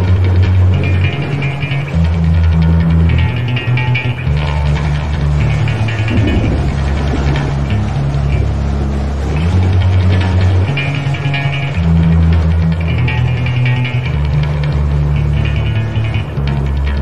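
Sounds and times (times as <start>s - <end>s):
metal band guitars and bass: 0.0s - 17.0s.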